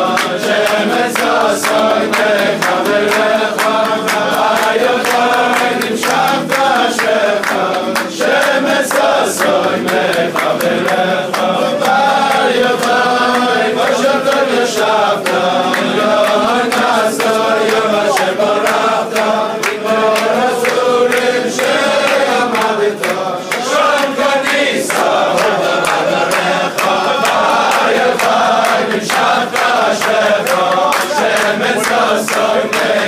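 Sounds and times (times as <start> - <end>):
men singing in unison: 0.0 - 33.0.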